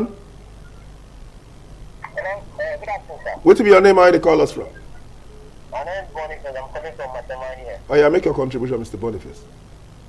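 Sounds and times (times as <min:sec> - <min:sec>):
low hum: 0:00.0 - 0:10.0
studio voice: 0:02.0 - 0:04.9, 0:05.7 - 0:09.5
caller's voice over telephone: 0:02.0 - 0:05.0, 0:05.7 - 0:09.4.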